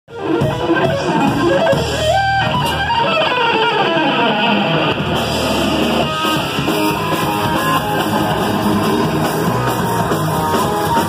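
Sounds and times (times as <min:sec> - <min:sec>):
bass and drum backing: 0:00.1 - 0:11.0
electric guitar lead line: 0:00.1 - 0:11.0.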